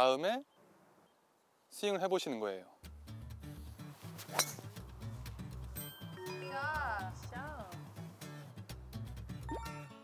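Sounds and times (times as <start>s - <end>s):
background music with bass line: 2.8s - 10.0s
golf club striking ball: 4.3s - 4.6s.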